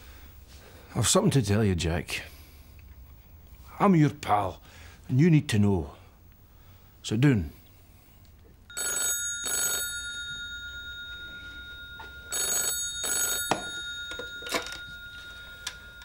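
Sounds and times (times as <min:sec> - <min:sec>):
old telephone bell ringing: 0:08.7 - 0:16.0.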